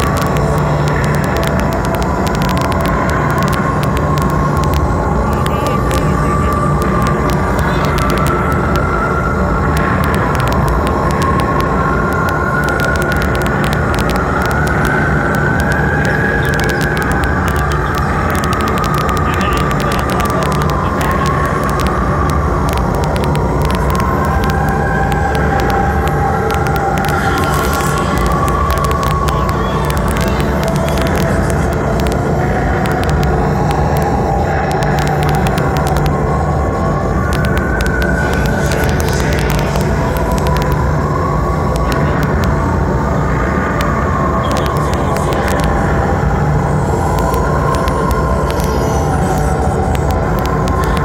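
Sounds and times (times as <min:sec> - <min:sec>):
distorted guitar: 0:00.0 - 0:51.0.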